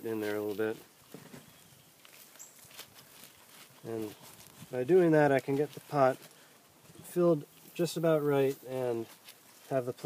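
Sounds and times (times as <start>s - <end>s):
gloved hands scraping potting soil: 0.0s - 10.0s.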